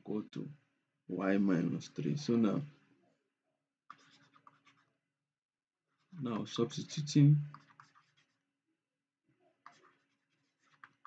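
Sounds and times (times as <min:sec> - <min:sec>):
stylus scratching on tablet: 0:03.9 - 0:05.1, 0:05.9 - 0:08.6, 0:09.6 - 0:11.0.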